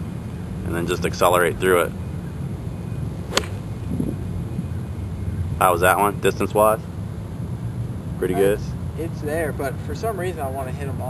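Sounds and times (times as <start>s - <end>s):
golf club striking ball: 3.3s - 3.7s.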